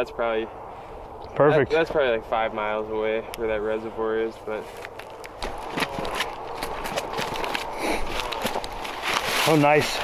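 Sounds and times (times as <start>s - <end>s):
boots crunching through dry stubble: 4.6s - 10.0s.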